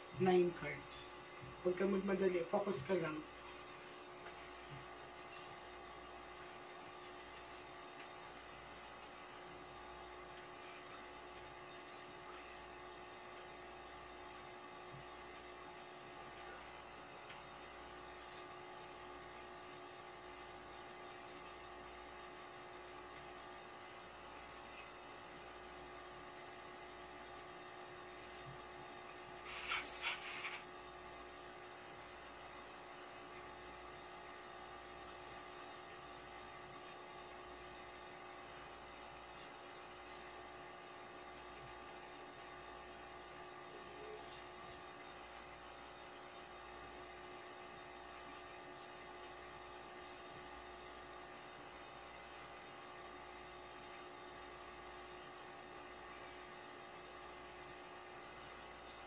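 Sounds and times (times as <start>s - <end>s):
constant hiss: 0.0s - 31.4s
low electrical mains hum: 0.0s - 59.0s.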